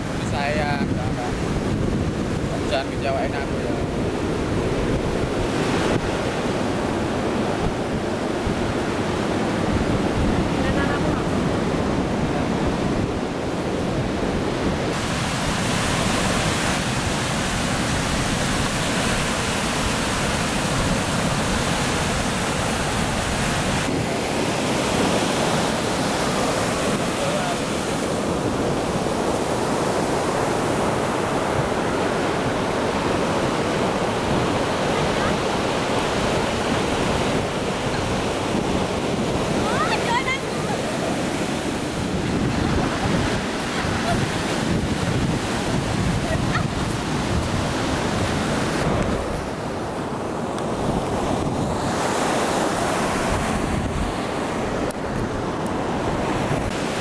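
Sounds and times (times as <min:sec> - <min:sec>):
ocean surf breaking: 0:00.0 - 0:57.0
wind on microphone: 0:00.0 - 0:57.0.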